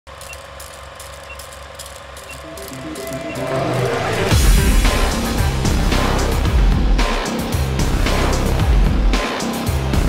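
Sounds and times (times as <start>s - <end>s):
film projector whirring: 0.1s - 3.8s
short high beeps: 2.3s - 4.3s.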